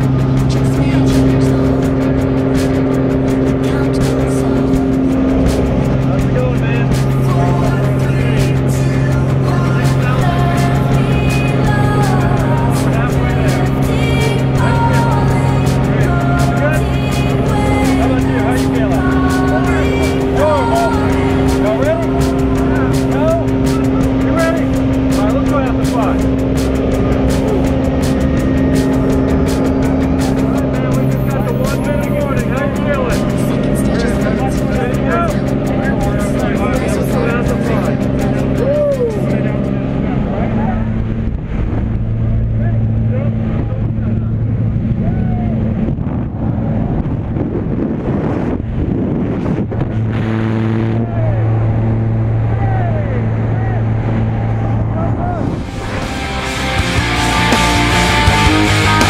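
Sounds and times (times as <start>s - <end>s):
background music: 0.0s - 42.4s, 52.3s - 59.0s
plane engine and propeller running: 0.0s - 59.0s.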